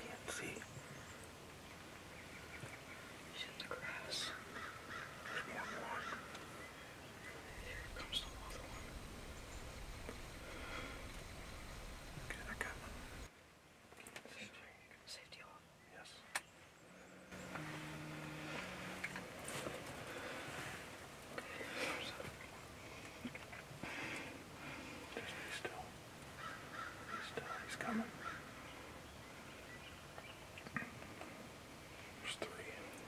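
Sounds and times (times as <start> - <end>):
person whispering: 0.0 - 0.7, 3.3 - 4.4, 5.3 - 6.1, 7.4 - 9.1, 12.2 - 13.1, 14.2 - 16.2, 21.4 - 22.3, 25.1 - 25.9, 27.1 - 28.1, 32.2 - 33.0
steady low rumble: 6.2 - 13.3.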